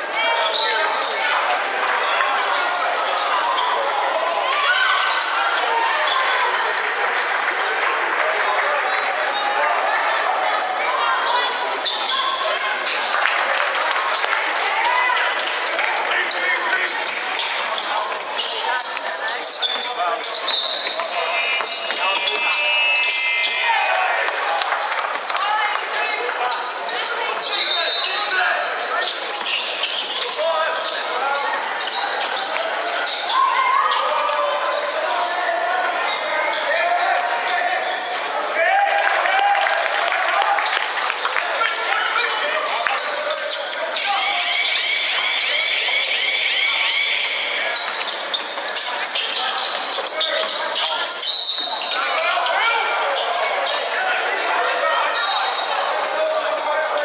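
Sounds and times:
people calling out: 16.1s - 29.5s.

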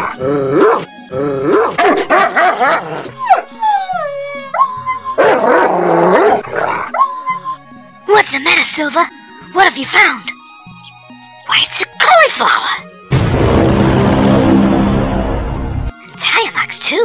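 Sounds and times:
background music: 0.0s - 17.0s
dog barking and howling: 0.6s - 7.6s.

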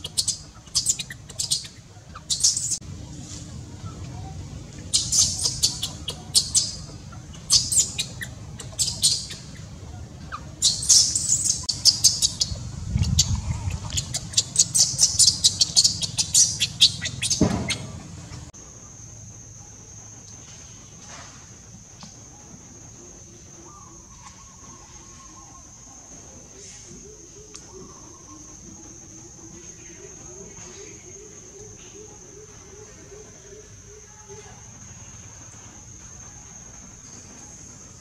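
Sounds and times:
low rumble: 11.2s - 17.2s.

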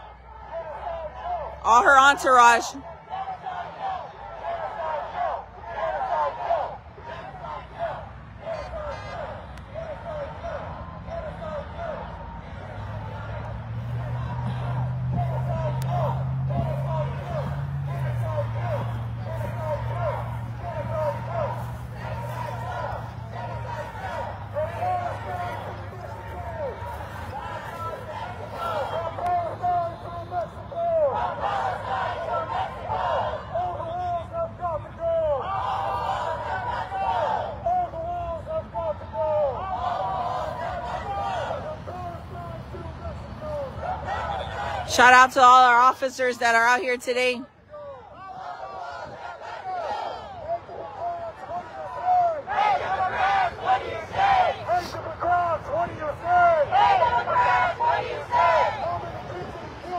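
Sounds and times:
crowd shouting and chanting: 0.0s - 59.9s
people talking in background: 0.0s - 59.9s
traffic rumble: 0.0s - 59.9s
voices through megaphones: 0.0s - 59.9s.

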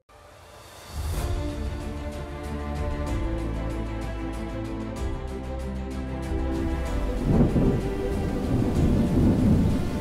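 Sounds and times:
background music: 0.1s - 10.0s
deep rolling thunder: 7.2s - 10.0s.

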